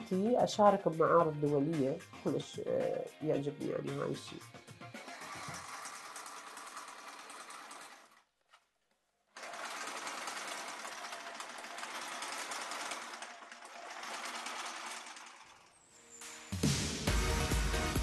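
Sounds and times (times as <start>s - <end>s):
sewing machine running: 4.9s - 8.3s, 9.3s - 15.9s.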